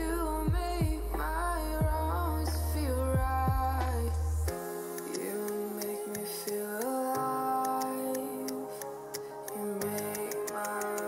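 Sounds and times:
keyboard music with ticking beat: 0:00.0 - 0:11.0.

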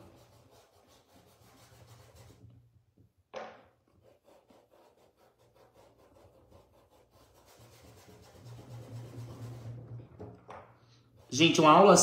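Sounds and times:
paintbrush rubbing on fabric: 0:00.0 - 0:02.5, 0:03.9 - 0:09.8.

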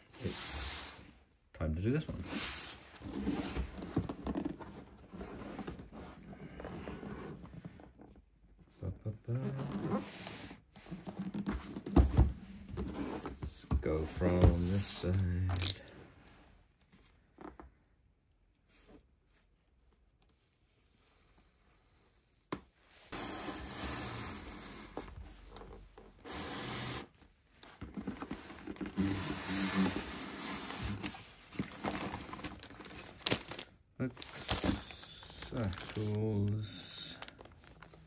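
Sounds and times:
plastic packaging crinkling and tearing: 0:31.7 - 0:38.0.

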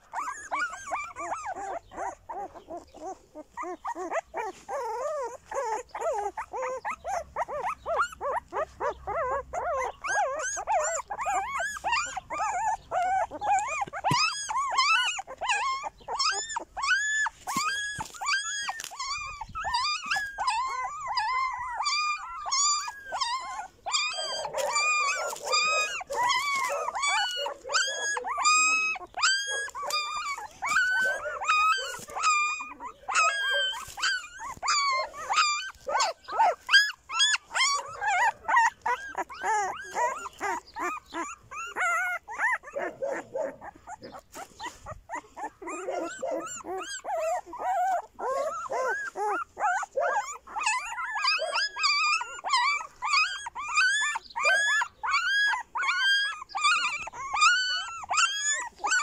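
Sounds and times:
puppies whining and squealing: 0:00.0 - 0:59.0.

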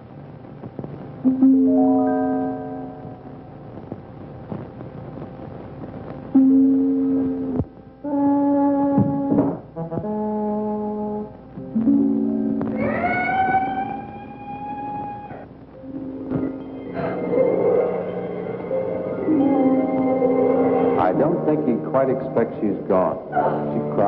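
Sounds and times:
film score low brass notes: 0:08.0 - 0:12.6, 0:15.9 - 0:24.0.

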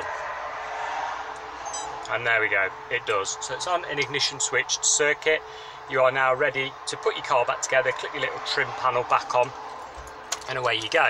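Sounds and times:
high-pitched electronic chime: 0:01.6 - 0:02.0.

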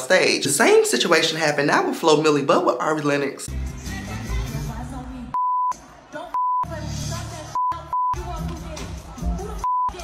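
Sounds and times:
censor bleep: 0:05.4 - 0:05.7, 0:06.4 - 0:06.7, 0:07.6 - 0:08.2, 0:09.6 - 0:10.0.

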